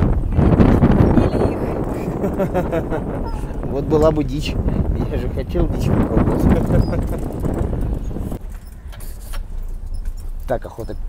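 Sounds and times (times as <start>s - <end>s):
vehicle clicks and rattles: 0.0s - 4.6s, 5.4s - 11.0s
vehicle engine and road rumble: 0.0s - 11.0s.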